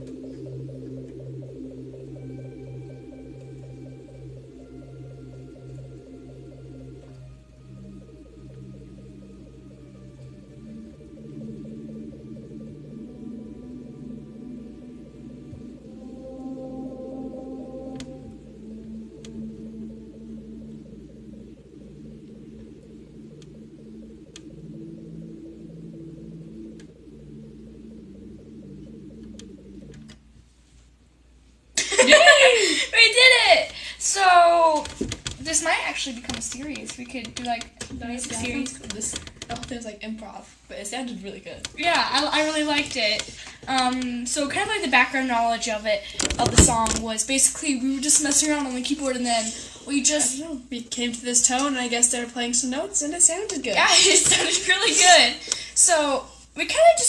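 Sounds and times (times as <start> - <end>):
electronic keyboard piece: 0.0 - 30.6, 31.8 - 39.9.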